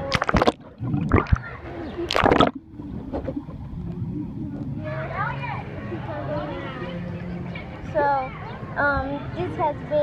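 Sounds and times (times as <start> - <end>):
water splashing and bubbling: 0.0 - 4.8
muffled underwater wash: 0.0 - 5.9.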